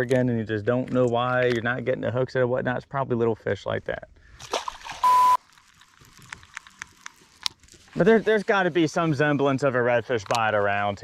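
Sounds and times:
small splash in water: 4.4s - 5.4s
short sharp beep: 5.0s - 5.4s.

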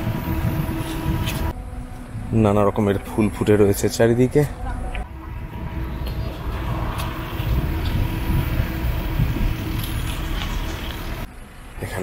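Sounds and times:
wind rumbling on microphone: 0.0s - 2.4s, 4.6s - 11.3s.

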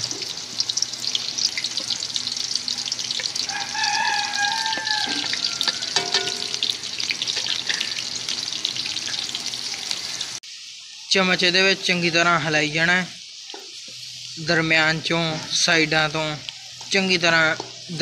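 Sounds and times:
onions sizzling in oil: 0.0s - 18.0s.

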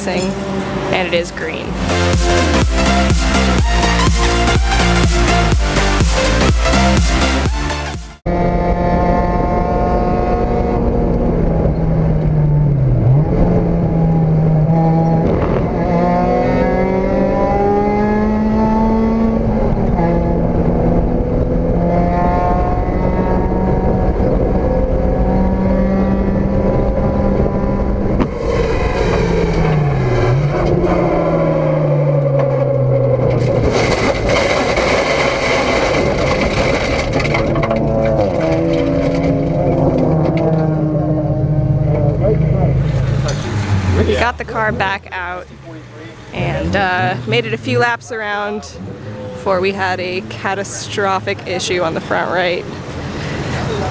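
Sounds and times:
race car engine revving: 0.0s - 53.9s
harsh rushing noise: 0.3s - 8.8s, 26.8s - 45.3s.

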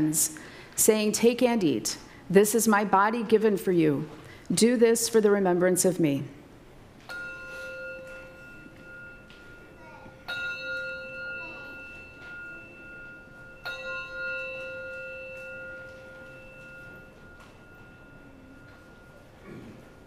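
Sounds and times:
bell ringing: 7.0s - 20.0s.

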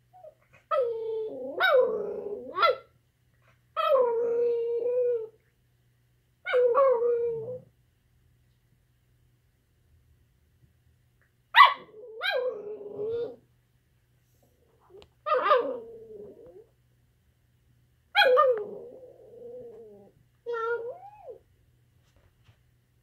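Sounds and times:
dog howling vocalizations: 0.7s - 2.8s, 11.9s - 13.4s, 15.2s - 16.7s, 18.2s - 21.4s.

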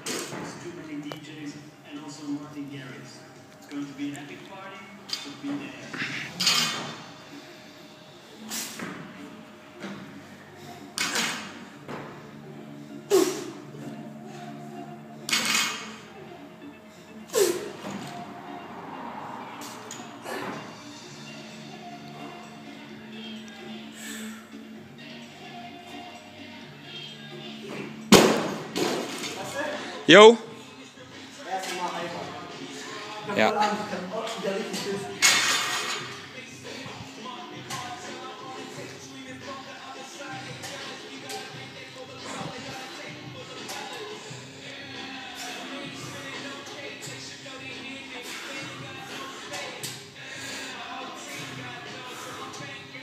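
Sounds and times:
gym voices: 8.3s - 53.0s.

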